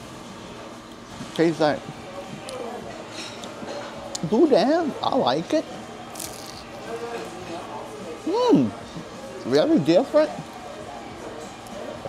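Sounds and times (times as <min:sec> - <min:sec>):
murmur of background voices: 0:00.0 - 0:12.0
crunch of biting food: 0:06.2 - 0:06.7.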